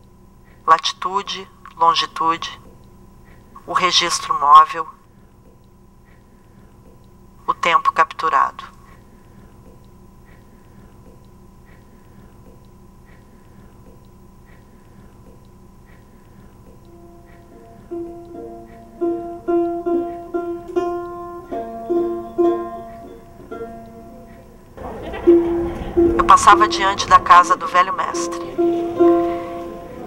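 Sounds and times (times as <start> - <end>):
faint steady hum: 0.0 - 30.0
soft regular ticks: 2.6 - 3.6, 5.1 - 7.4, 8.8 - 19.0
plucked string instrument notes: 16.9 - 30.0.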